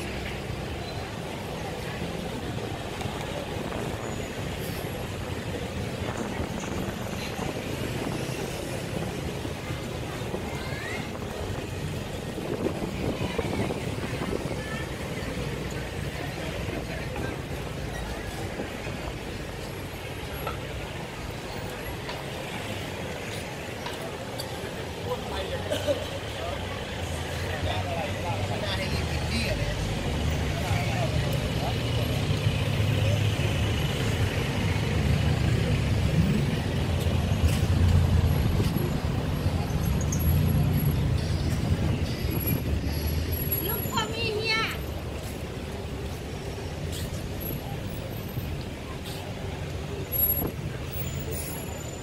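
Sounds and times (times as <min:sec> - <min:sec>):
people talking: 0:00.0 - 0:42.8, 0:43.5 - 0:51.6
heavy vehicle engine rumble: 0:00.0 - 0:52.0
road traffic: 0:00.0 - 0:52.0.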